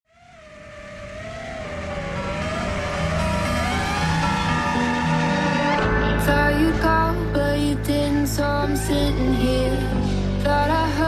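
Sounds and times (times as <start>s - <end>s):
wavering whine-like tone: 0.0s - 7.5s.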